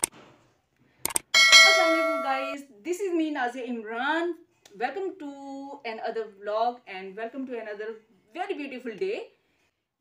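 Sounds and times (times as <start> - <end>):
bright bell chime: 1.4 - 2.6.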